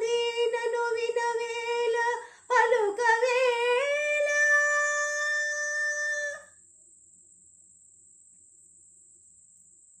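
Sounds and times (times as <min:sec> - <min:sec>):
woman singing a held note: 0:00.0 - 0:06.5
faint high-pitched whine: 0:00.0 - 0:10.0.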